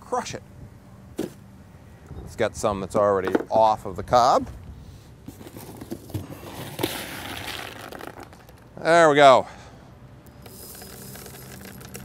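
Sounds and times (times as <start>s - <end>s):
corn kernels rustling: 6.4s - 8.7s.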